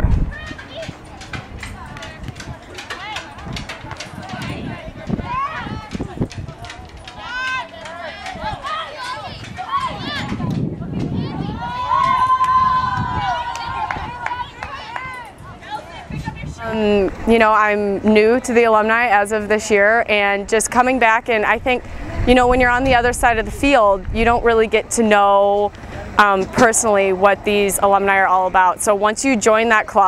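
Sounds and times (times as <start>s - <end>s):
distant players calling out: 0.3s - 20.3s.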